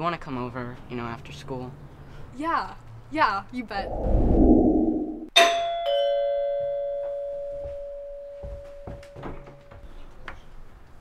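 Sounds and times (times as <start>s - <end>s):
two-tone doorbell chime: 5.4s - 9.8s.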